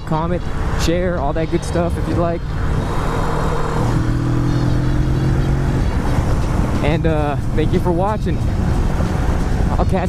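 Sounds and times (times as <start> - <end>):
motorcycle engine cruising: 0.0 - 10.0
wind rush: 0.0 - 10.0.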